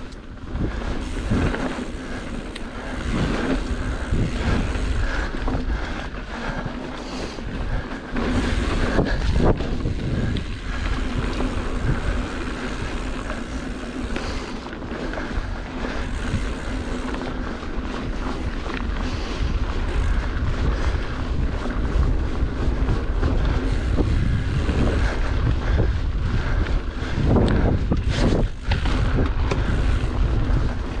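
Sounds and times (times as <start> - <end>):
bike knocking and rattling: 0.0 - 31.0
wind buffeting microphone: 0.0 - 31.0.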